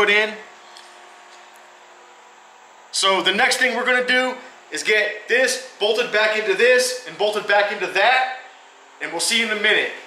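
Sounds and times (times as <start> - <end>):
steady hum with faint hiss: 0.0 - 10.0.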